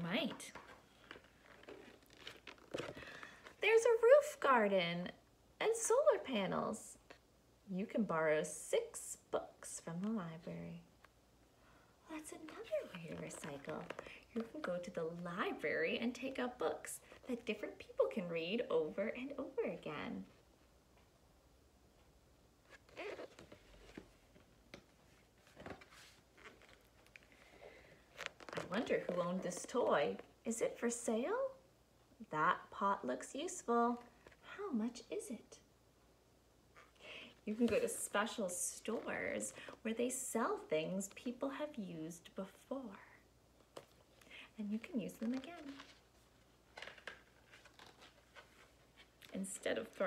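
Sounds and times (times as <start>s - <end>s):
book page turning rustle: 0.1s - 3.6s, 12.4s - 15.3s, 22.7s - 30.3s, 37.5s - 39.5s, 44.8s - 50.0s.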